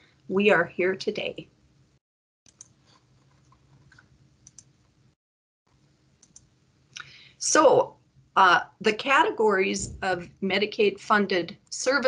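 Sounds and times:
computer mouse clicks: 2.5s - 4.8s, 6.2s - 6.5s.

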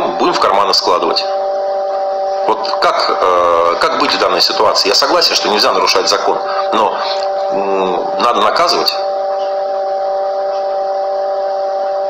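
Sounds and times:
steady pitched hum: 0.0s - 12.0s.

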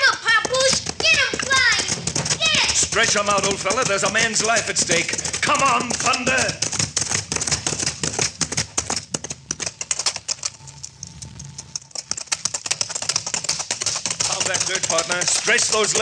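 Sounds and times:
horses galloping hoofbeats: 0.0s - 16.0s.

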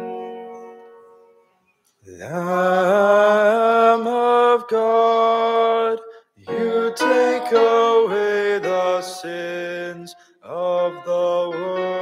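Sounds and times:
piano chord: 0.0s - 1.4s, 6.5s - 12.0s
solo voice chanting: 2.0s - 12.0s.

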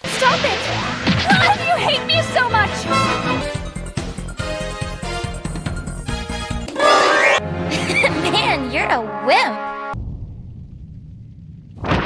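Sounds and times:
loud rushing whoosh: 0.0s - 3.5s
low rumble: 0.0s - 3.9s, 9.9s - 12.0s.

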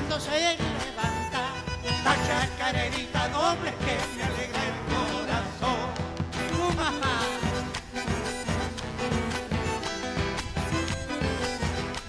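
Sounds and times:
man singing: 0.0s - 9.6s
folk band playing live: 0.0s - 12.0s.

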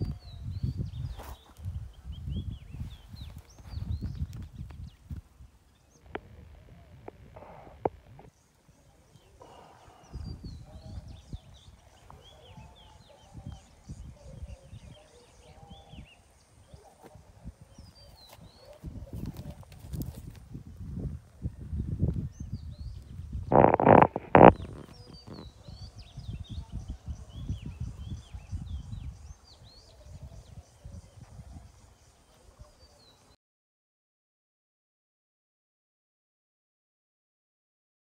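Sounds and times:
birds chirping: 0.0s - 20.4s, 21.4s - 33.4s
wind on microphone: 0.0s - 33.2s.

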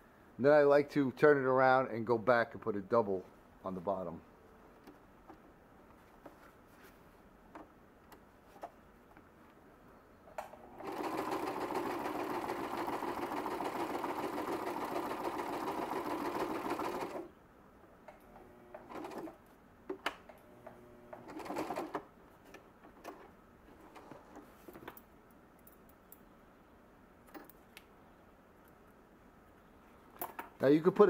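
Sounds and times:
sewing machine stitching canvas: 10.6s - 17.3s, 18.2s - 19.4s, 20.4s - 22.1s.

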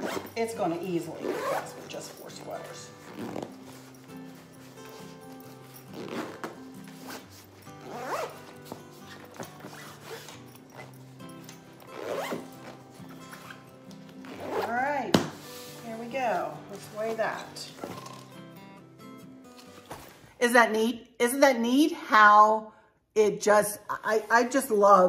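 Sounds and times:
zipper pulled on fabric: 0.0s - 18.2s
soft background music: 0.0s - 25.0s.

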